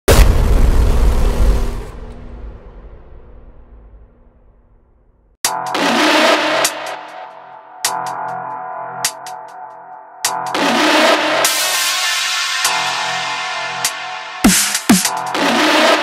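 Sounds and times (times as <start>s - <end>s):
loud noisy boom: 0.1s - 5.4s
hardcore techno music: 5.4s - 16.0s.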